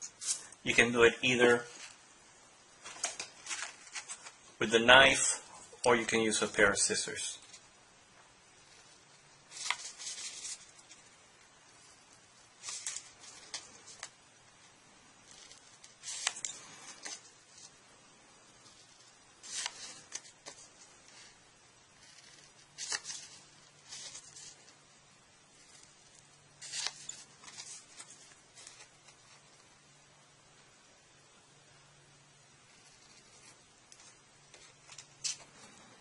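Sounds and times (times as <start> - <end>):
scissors snipping paper: 15.3 - 17.2.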